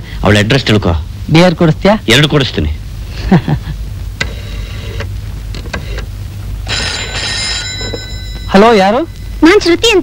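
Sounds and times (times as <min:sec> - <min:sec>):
telephone bell ringing: 0:06.6 - 0:09.4.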